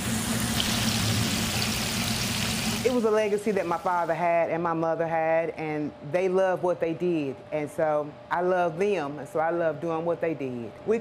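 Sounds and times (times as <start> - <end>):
fish sizzling in deep fryer: 0.0 - 4.2.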